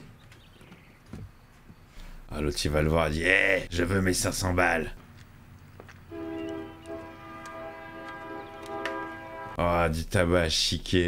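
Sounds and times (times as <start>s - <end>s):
held soundtrack chord: 6.1s - 9.6s.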